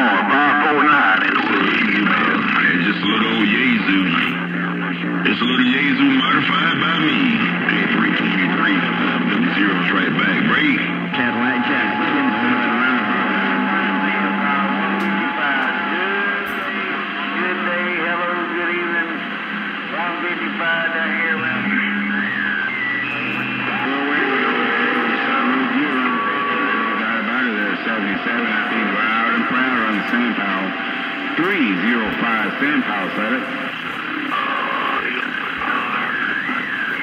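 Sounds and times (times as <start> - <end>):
garbled radio voices: 0.0 - 37.0
music over radio: 0.0 - 37.0
radio whistle tones: 5.2 - 19.7, 20.3 - 37.0.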